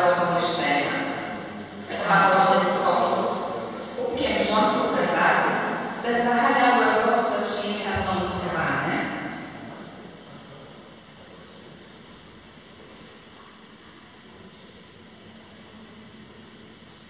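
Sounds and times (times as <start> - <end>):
echoing voice: 0.0 - 10.2
hall room tone hiss: 0.0 - 17.0.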